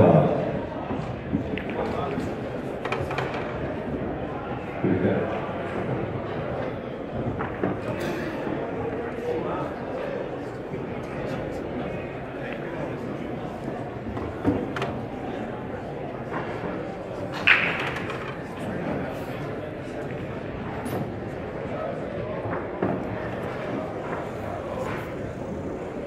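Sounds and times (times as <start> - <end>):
murmur of many voices: 0.0 - 26.0
pool balls clicking: 1.0 - 4.4, 12.4 - 19.0.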